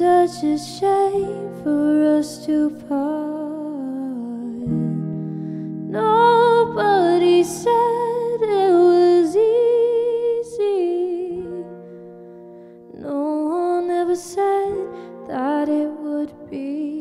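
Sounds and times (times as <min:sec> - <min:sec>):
woman singing slow song: 0:00.0 - 0:11.9, 0:12.9 - 0:17.0
electric guitar chords: 0:04.6 - 0:09.7.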